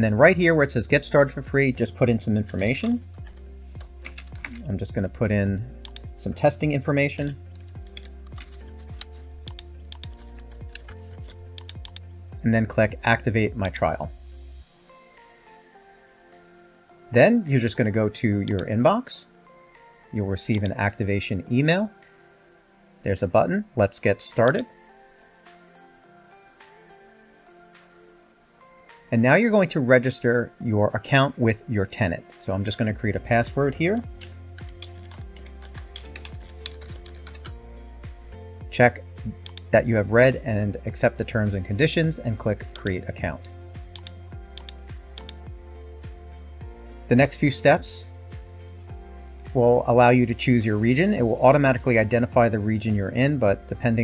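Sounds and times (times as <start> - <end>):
soft background music: 0.0 - 54.0
computer keyboard keystrokes: 7.6 - 12.0, 34.2 - 37.6.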